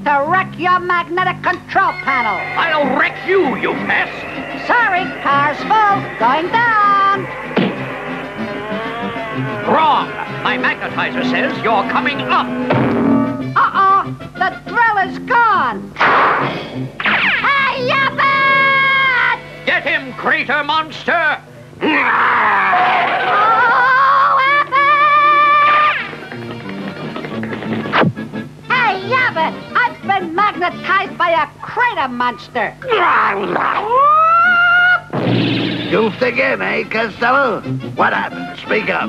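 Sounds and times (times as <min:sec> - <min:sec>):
cartoon character yelling: 0:17.2 - 0:19.4, 0:32.8 - 0:35.1.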